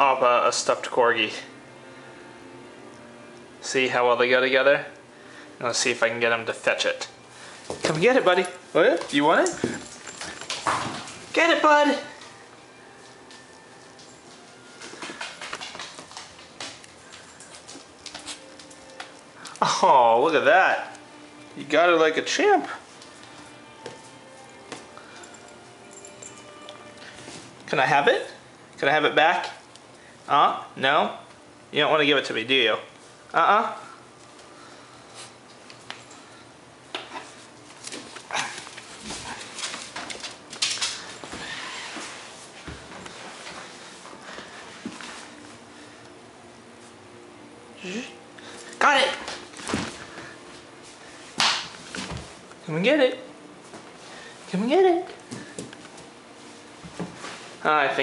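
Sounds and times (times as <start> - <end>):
dog claws clicking on tile: 15.0 - 19.2.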